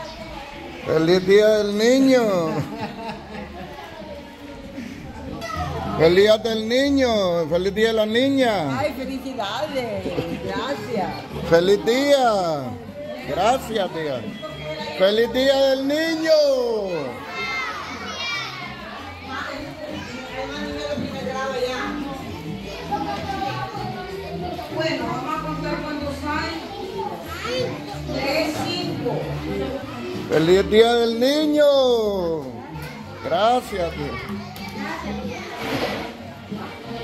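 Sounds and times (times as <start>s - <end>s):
young children chattering: 0.0s - 37.0s.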